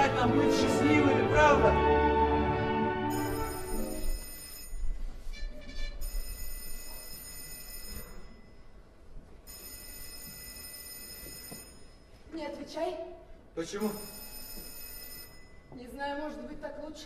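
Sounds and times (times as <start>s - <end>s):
music: 0.0s - 4.2s
telephone bell ringing: 3.1s - 5.0s, 6.0s - 8.8s, 9.4s - 12.2s, 13.8s - 15.8s.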